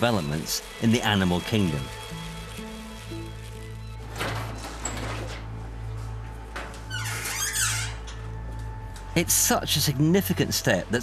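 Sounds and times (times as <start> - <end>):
high squeaky gliding sounds: 6.9 - 8.1.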